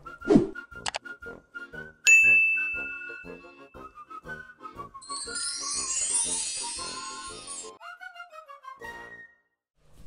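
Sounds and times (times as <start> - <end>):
notification bell ding: 2.1 - 3.5.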